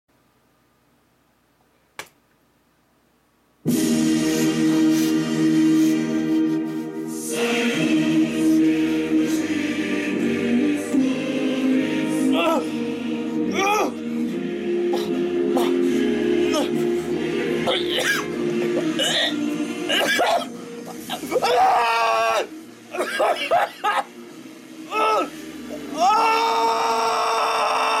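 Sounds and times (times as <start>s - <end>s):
loud music sustained chord: 3.7s - 28.0s
young man screaming: 21.3s - 22.5s, 24.9s - 25.3s, 25.9s - 28.0s.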